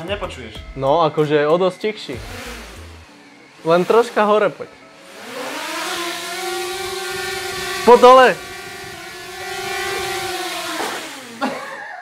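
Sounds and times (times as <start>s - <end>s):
drone propellers whining: 2.1s - 11.7s.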